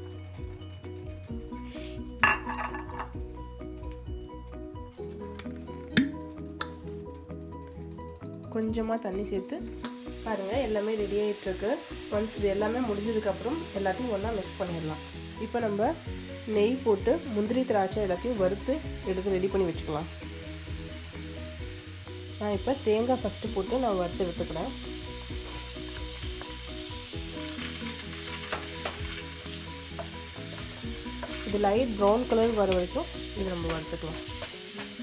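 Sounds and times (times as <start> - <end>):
coconut sizzling in frying pan: 0.0 - 8.3, 9.2 - 35.0.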